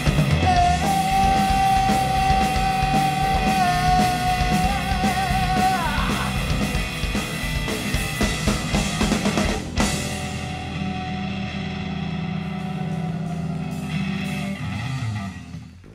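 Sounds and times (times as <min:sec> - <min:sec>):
live rock band playing: 0:00.0 - 0:15.9
sustained guitar chord ringing: 0:10.0 - 0:15.4.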